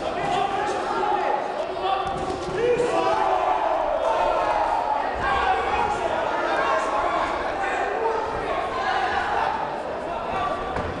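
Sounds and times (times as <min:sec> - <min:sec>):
voices shouting: 0:00.0 - 0:10.6.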